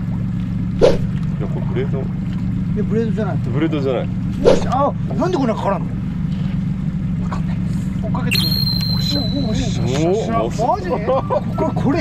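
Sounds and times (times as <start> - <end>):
boat engine idling: 0.0 - 12.0
high-pitched tone: 8.3 - 10.2.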